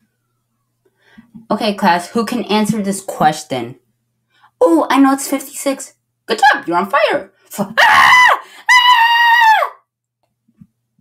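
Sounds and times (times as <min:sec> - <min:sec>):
person screaming: 0:07.8 - 0:09.8.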